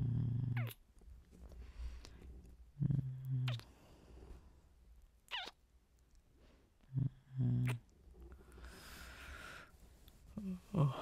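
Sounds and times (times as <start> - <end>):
man humming: 10.4 - 11.0.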